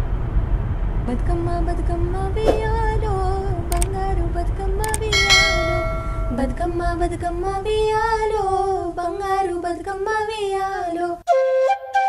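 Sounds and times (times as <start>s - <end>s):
metallic bell ring: 5.1s - 6.7s
women singing folk song: 6.2s - 11.2s.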